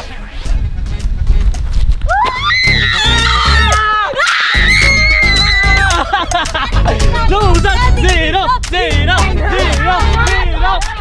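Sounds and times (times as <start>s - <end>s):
background music with steady beat: 0.0s - 11.0s
woman screaming high-pitched: 2.1s - 6.0s.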